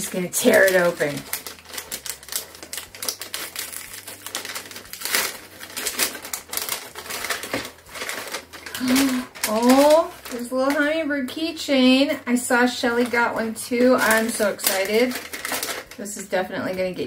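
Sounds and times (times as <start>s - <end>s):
wrapping paper crinkling: 0.0s - 11.0s, 12.4s - 16.8s.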